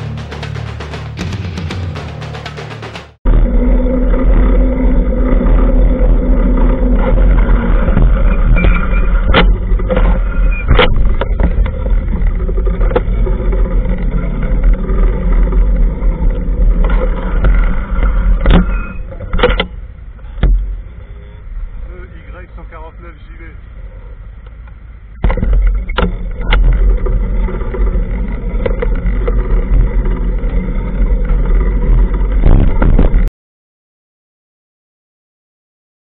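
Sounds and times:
motorcycle engine running: 0.0s - 33.3s
low rumble on microphone: 3.3s - 33.3s.

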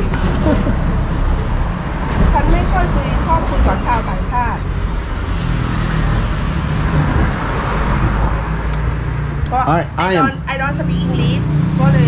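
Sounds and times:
vehicle rumbling by: 0.0s - 12.0s.

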